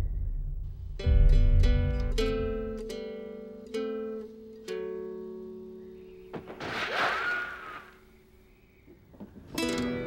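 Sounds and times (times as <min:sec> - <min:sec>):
guitar music: 0:01.0 - 0:06.5, 0:09.6 - 0:10.0.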